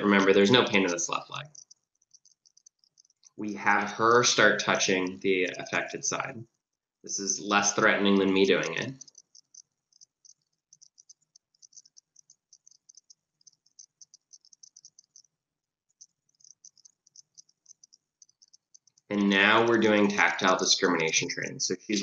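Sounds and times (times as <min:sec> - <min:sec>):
faint high-pitched ticking: 0:00.0 - 0:22.0.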